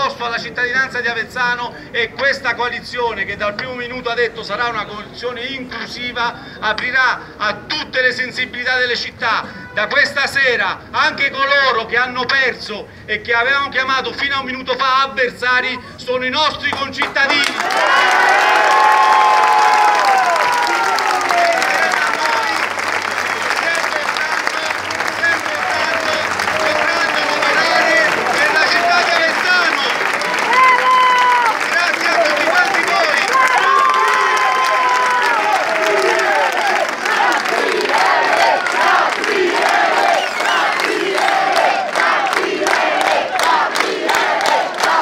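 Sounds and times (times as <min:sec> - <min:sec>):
crowd applauding and cheering: 0:17.0 - 0:45.0
voices shouting: 0:25.3 - 0:41.7.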